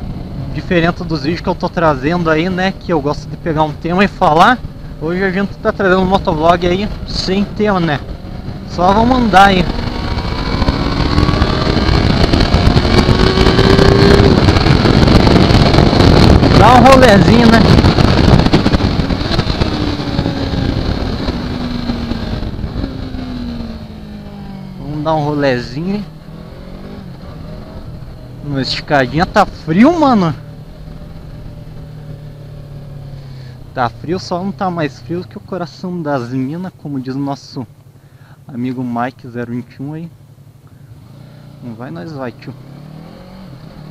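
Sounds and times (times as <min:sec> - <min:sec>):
motorcycle engine running: 0:00.0 - 0:43.9
wind and road noise: 0:00.0 - 0:43.9.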